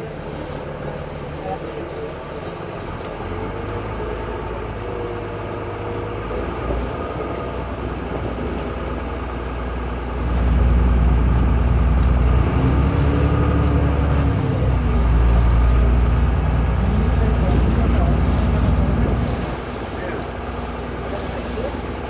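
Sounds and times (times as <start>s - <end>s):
boat engine droning: 0.0s - 22.0s.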